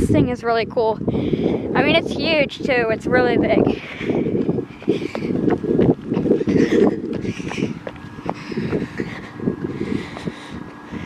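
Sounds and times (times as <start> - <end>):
faint steady hum: 0.0 - 11.0
wind buffeting microphone: 0.0 - 11.0
footsteps: 3.6 - 10.8.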